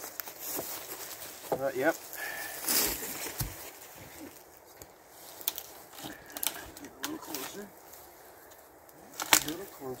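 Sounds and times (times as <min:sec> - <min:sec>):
rustling on pine needles: 0:00.0 - 0:10.0.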